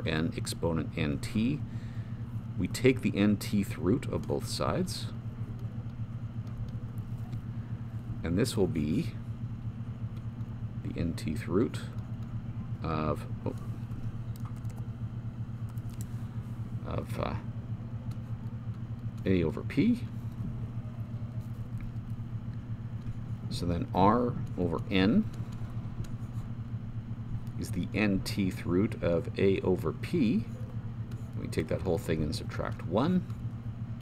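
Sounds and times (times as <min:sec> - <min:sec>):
low fluttering hum: 0:00.0 - 0:34.0.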